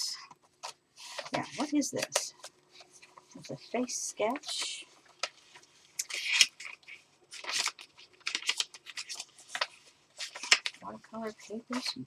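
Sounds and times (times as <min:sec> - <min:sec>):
paper pages rustling: 0:00.3 - 0:12.0.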